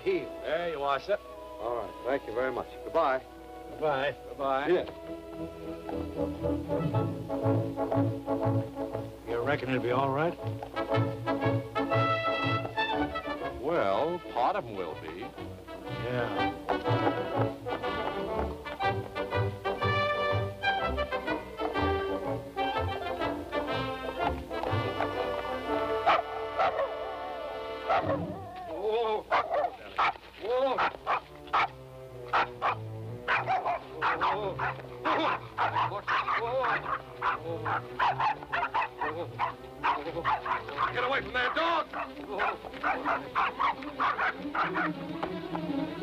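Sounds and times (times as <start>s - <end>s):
film score music: 0.0s - 46.0s
dog barking: 26.0s - 27.0s, 27.8s - 28.6s, 29.3s - 30.2s, 30.8s - 31.7s, 32.3s - 41.1s, 41.9s - 45.0s.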